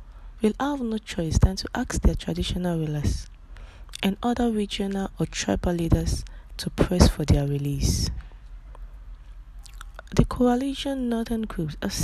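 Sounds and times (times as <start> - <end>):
low steady hum: 0.0 - 12.0
person speaking: 0.4 - 3.3, 4.0 - 8.2, 9.7 - 12.0
breath: 3.5 - 3.9
mouth clicks: 9.6 - 10.2.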